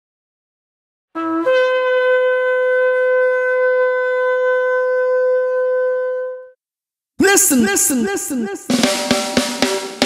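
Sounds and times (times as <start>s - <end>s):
shofar long held note: 1.2s - 6.6s.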